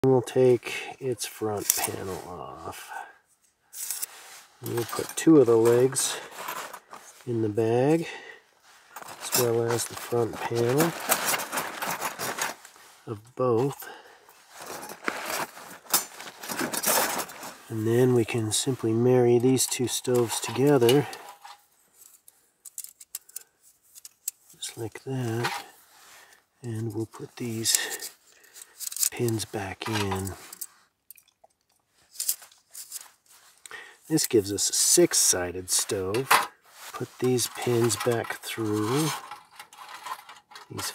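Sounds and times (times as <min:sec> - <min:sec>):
rustling handling noise: 0:01.2 - 0:40.9
metal hinge pins scraping: 0:19.6 - 0:21.6.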